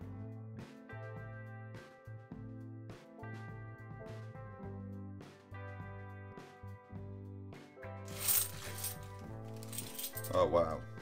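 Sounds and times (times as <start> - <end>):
background music: 0.0 - 11.0
coins clinking: 8.1 - 10.5.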